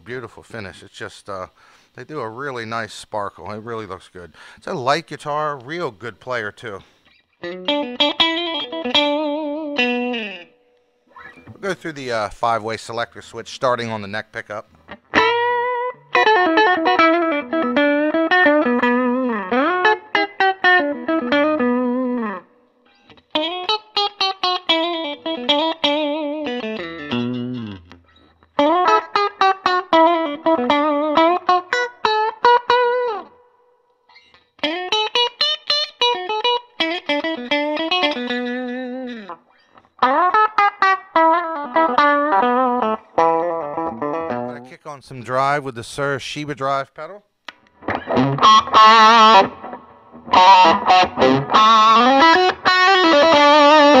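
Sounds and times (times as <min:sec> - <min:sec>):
electric guitar through amplifier: 0:14.6 - 0:33.4, 0:34.3 - 0:44.8, 0:47.5 - 0:54.0.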